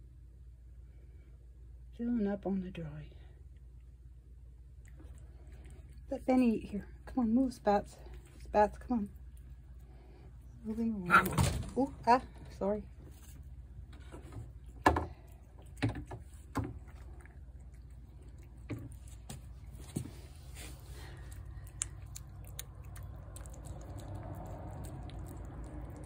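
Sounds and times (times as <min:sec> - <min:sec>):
cat chewing wet food: 0:04.7 - 0:07.1, 0:07.8 - 0:10.6, 0:13.2 - 0:26.0.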